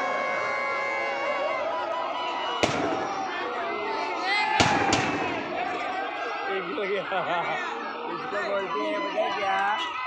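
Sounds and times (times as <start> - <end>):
crowd chattering and shouting: 0.0 - 10.0
firecrackers banging: 2.6 - 3.4, 4.6 - 5.9.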